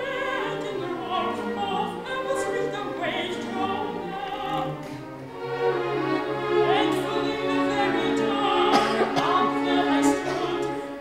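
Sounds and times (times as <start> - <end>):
woman singing operatically: 0.0 - 4.8, 6.7 - 10.9
string orchestra chords: 0.0 - 11.0.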